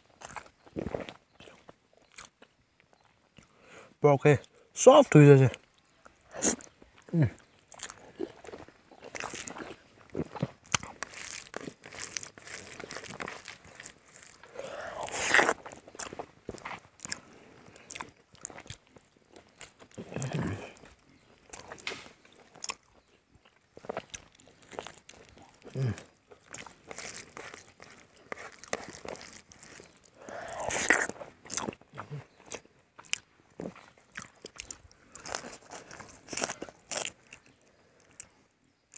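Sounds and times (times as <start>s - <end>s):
man chewing: 0.1s - 3.6s, 5.6s - 38.9s
man humming mm: 20.0s - 20.8s, 25.7s - 26.1s.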